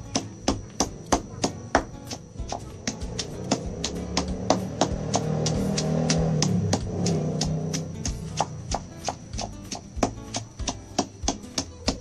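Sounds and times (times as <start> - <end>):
music: 0.0 - 12.0
stone pestle pounding in mortar: 0.0 - 12.0.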